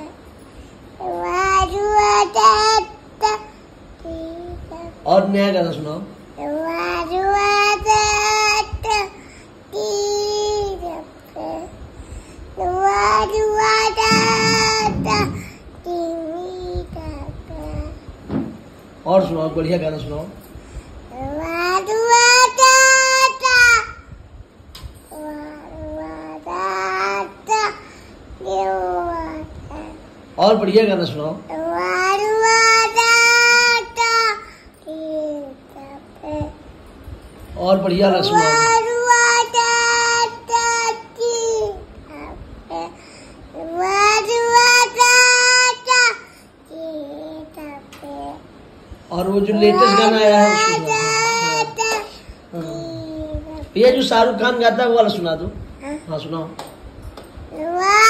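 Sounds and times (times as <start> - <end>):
toddler singing: 1.0 - 5.0, 6.4 - 11.8, 12.6 - 18.0, 21.1 - 24.1, 25.1 - 30.0, 31.5 - 36.6, 38.3 - 48.5, 49.5 - 53.7, 57.5 - 58.0
toddler singing a long note: 12.6 - 17.9.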